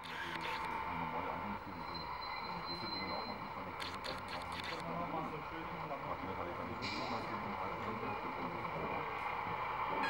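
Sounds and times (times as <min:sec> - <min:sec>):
model train motor whine: 0:00.0 - 0:05.0.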